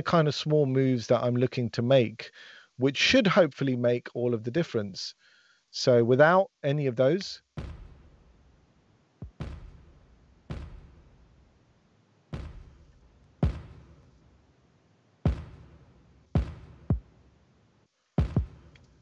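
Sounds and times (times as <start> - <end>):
kick drum thumps: 7.5 - 8.5, 9.2 - 11.5, 12.3 - 14.2, 15.3 - 17.1, 18.2 - 18.7.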